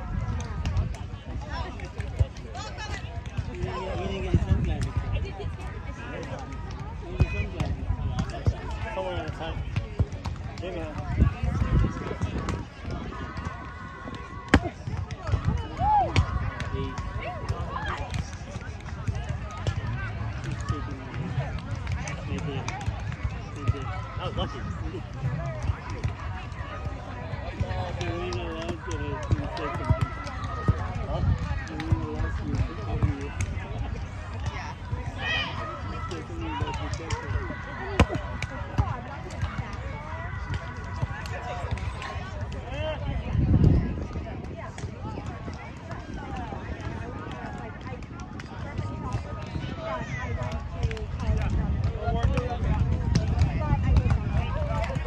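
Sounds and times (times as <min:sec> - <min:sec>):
chatter of voices: 0:00.0 - 0:55.0
people talking and calling: 0:00.0 - 0:55.0.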